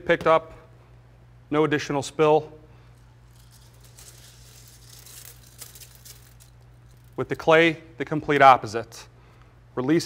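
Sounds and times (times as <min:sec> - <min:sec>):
granules pattering on steel: 0:03.0 - 0:07.3.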